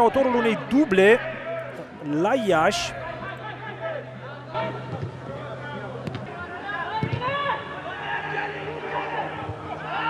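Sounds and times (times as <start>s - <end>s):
men calling out: 0.0s - 3.8s.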